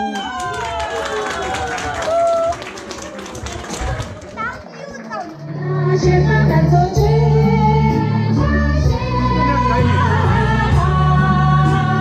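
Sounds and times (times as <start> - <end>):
crowd chatter: 0.0 - 10.9
children's voices: 3.8 - 5.5.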